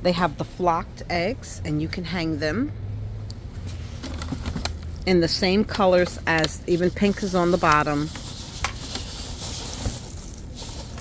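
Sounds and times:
rustling plastic wrap: 0:06.7 - 0:11.0.

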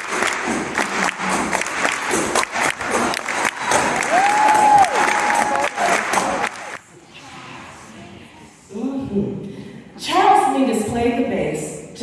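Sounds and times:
audience applauding and cheering: 0:00.0 - 0:06.9.

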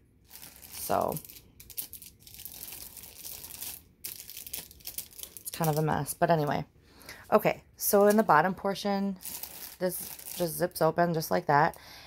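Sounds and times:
plastic wrapping crinkling: 0:00.2 - 0:06.1, 0:09.1 - 0:10.8
fabric bag rustling: 0:09.2 - 0:10.6.

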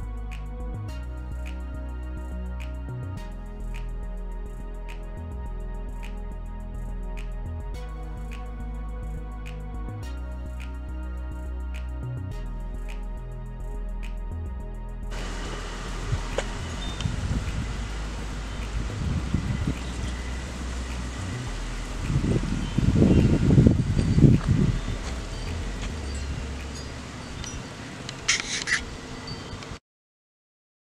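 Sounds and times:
background music: 0:00.0 - 0:27.2
low rumbling: 0:00.0 - 0:28.3
brief high hiss: 0:28.2 - 0:28.9.

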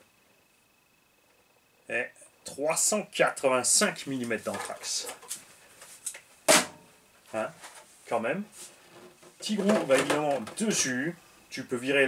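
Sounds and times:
sharp knock of hard object: 0:06.5 - 0:06.8.

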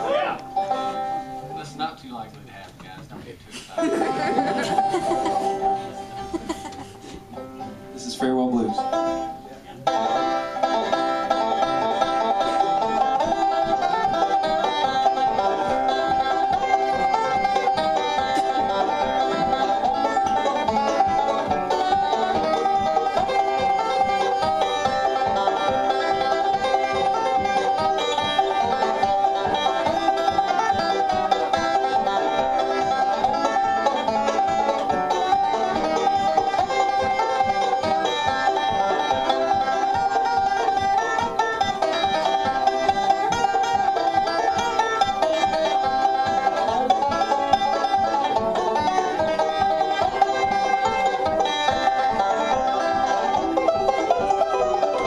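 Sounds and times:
banjo picking fast notes: 0:00.0 - 0:55.0
fiddle playing: 0:00.0 - 0:55.0.

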